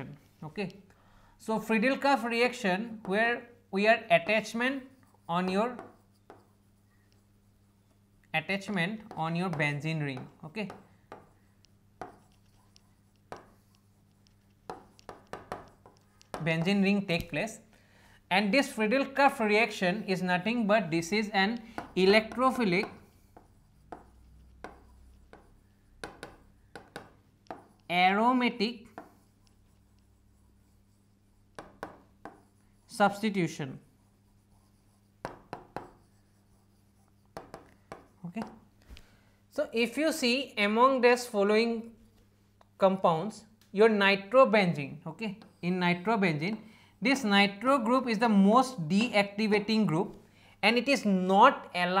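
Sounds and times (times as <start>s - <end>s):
stylus tapping on glass screen: 13.2s - 13.6s, 14.6s - 16.6s, 23.9s - 27.7s, 35.2s - 36.0s.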